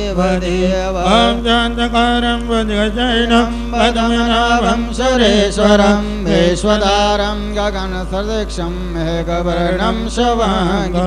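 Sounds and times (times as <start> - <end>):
held drone: 0.0 - 11.0
low hum: 0.0 - 11.0
person chanting: 0.0 - 11.0.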